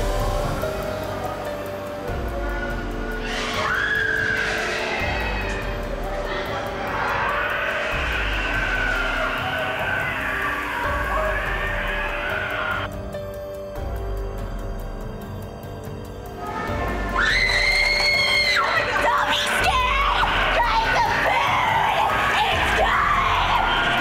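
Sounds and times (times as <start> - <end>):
droning tones: 0.0 - 24.0
high wavering wail: 2.6 - 12.9.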